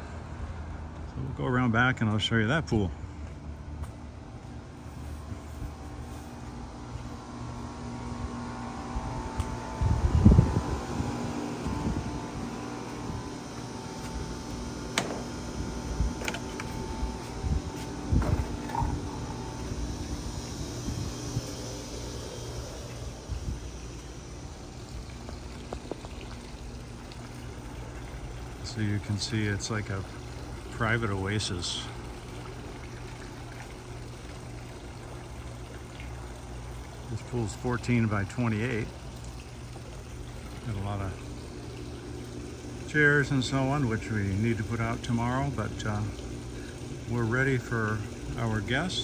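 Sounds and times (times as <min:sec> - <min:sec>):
mechanical hum of motors: 0:00.0 - 0:49.0.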